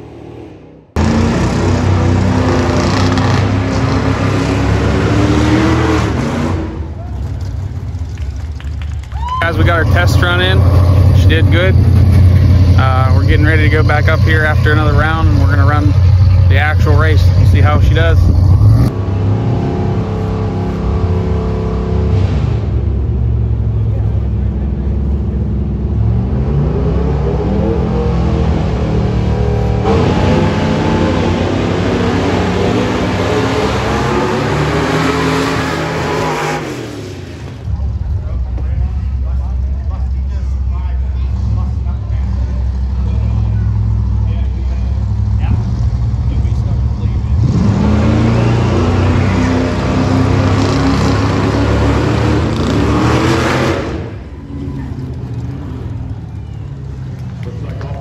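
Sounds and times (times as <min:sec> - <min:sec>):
drag race engines revving: 0:00.0 - 0:58.0.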